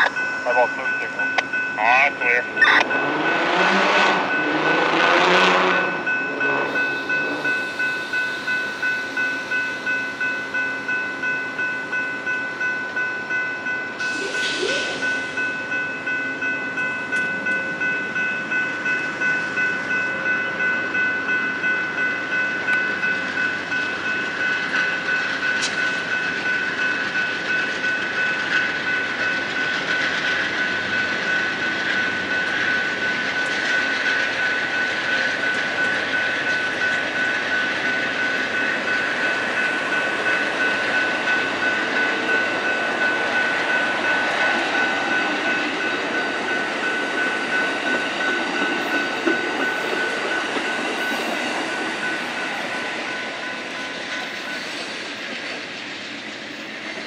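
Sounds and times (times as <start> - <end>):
crossing warning bell ringing: 0.0 - 57.0
train wheels on rails: 0.0 - 57.0.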